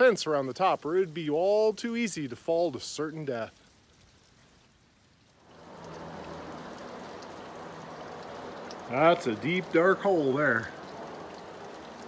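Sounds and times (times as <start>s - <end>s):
trickling water hiss: 0.0s - 12.0s.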